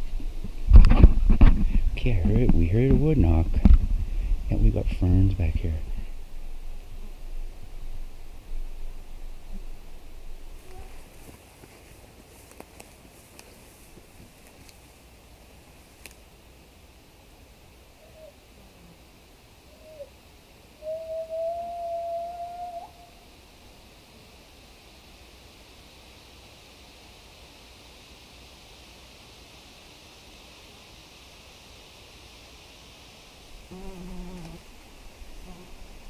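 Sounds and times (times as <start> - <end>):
whistle-like call: 20.8 - 23.2.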